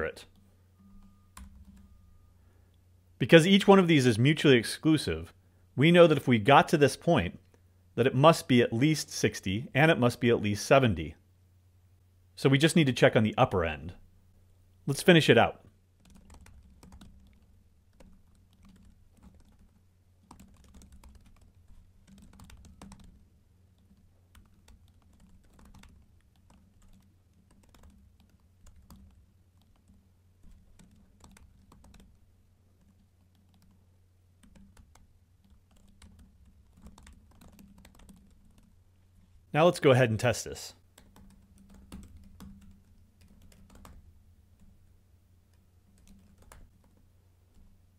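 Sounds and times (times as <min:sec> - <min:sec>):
low steady hum: 0:00.0 - 0:47.9
typing on a computer keyboard: 0:00.3 - 0:02.0, 0:16.0 - 0:38.8, 0:40.9 - 0:44.0, 0:45.5 - 0:47.7.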